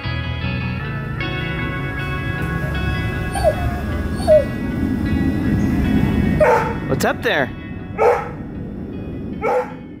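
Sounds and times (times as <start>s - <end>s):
music: 0.0s - 10.0s
dog barking: 6.4s - 6.8s, 8.0s - 8.4s, 9.4s - 9.8s.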